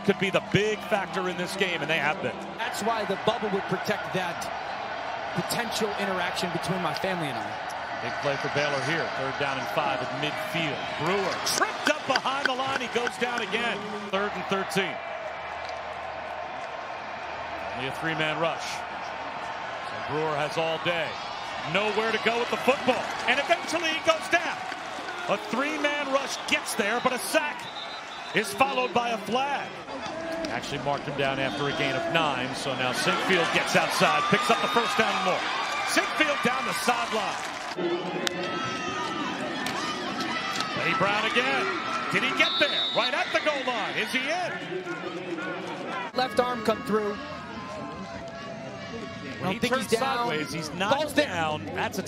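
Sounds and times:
stadium crowd noise: 0.0s - 52.0s
commentator speaking: 49.4s - 52.0s.

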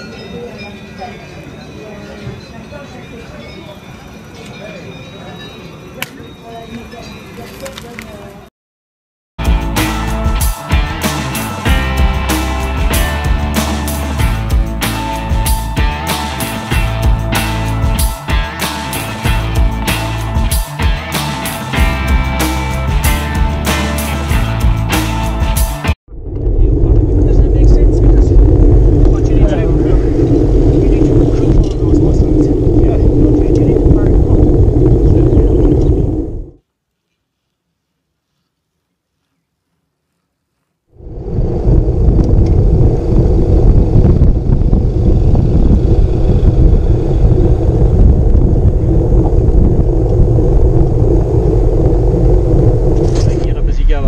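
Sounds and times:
wind buffeting microphone: 26.1s - 36.6s, 41.0s - 54.0s.

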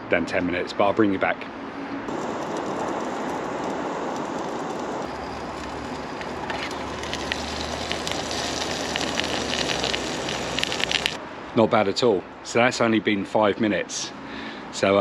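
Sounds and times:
food crackling in hot oil: 2.1s - 11.2s
gas stove burner hissing: 2.1s - 11.2s.

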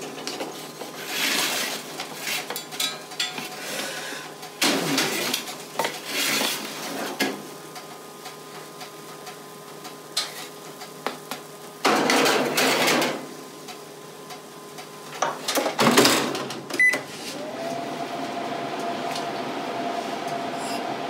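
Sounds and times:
metal tray scraping oven racks: 0.0s - 7.4s, 11.9s - 13.3s
oven hum: 0.0s - 21.0s.

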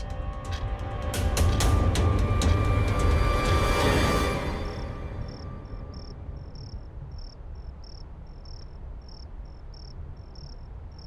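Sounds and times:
crickets chirping: 2.5s - 11.0s.

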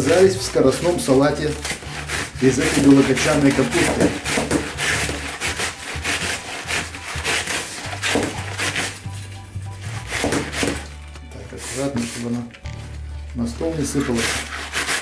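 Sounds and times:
cabbage scraping across shredder blades: 0.0s - 12.5s, 13.6s - 15.0s.

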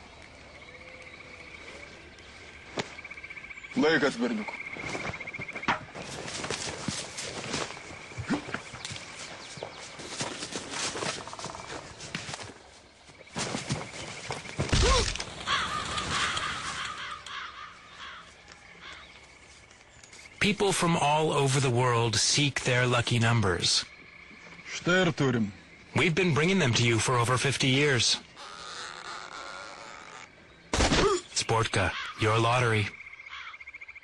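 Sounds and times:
crows cawing: 14.4s - 19.6s, 28.3s - 30.4s, 31.8s - 34.0s.

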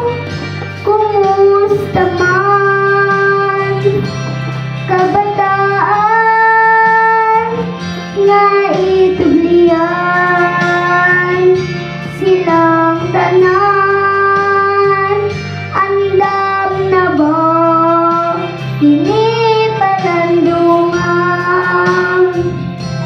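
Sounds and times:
girl singing into microphone: 0.0s - 22.8s
musical accompaniment: 0.0s - 23.0s.

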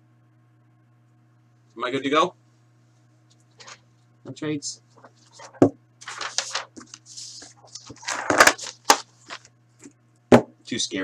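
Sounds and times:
low steady hum: 0.0s - 11.0s
rustle on tabletop: 5.0s - 9.5s.

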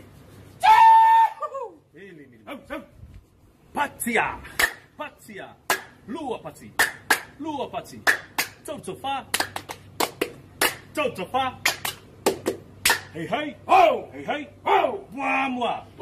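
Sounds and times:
sharp hand claps: 4.6s - 4.9s, 5.7s - 6.0s, 6.8s - 7.4s, 8.0s - 8.6s, 9.3s - 11.0s, 11.6s - 13.1s.

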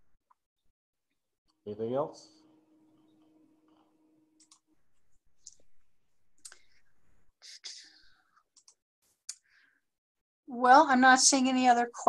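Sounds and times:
faint clicks: 6.4s - 6.8s.

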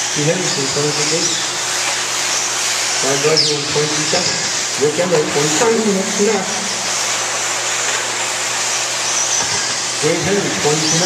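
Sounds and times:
electric rc buggies hissing: 0.0s - 11.0s
high falling whine: 0.0s - 11.0s
voices talking: 3.0s - 7.1s, 10.0s - 11.0s.

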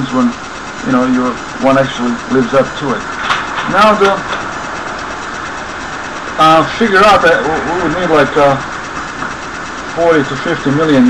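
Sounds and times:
steady hum and hiss: 0.0s - 11.0s.

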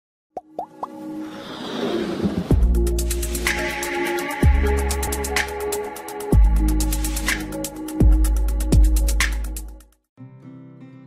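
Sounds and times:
bubbly plops: 0.4s - 1.0s
music build-up: 0.6s - 9.6s.

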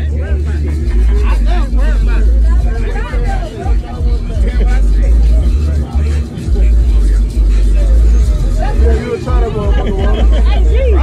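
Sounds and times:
men talking: 0.0s - 11.0s.

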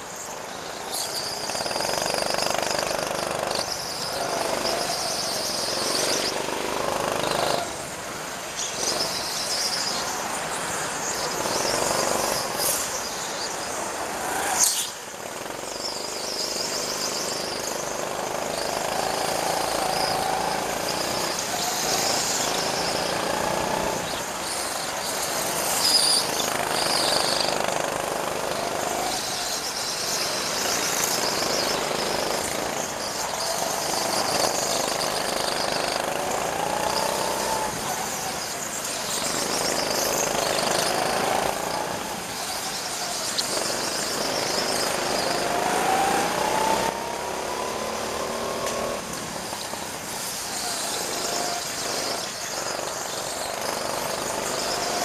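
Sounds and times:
go-kart engines running hard: 0.0s - 55.0s.

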